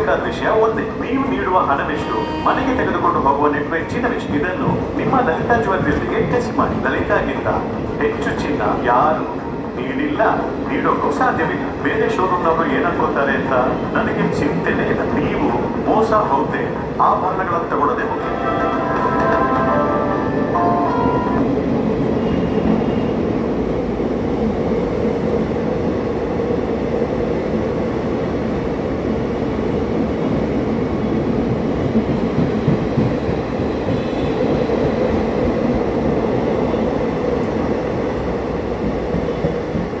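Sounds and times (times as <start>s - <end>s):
train wheels rumbling on rails: 2.6s - 40.0s.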